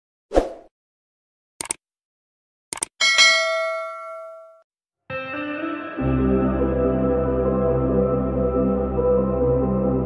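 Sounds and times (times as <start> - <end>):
bell chime ding: 3.0 - 4.6.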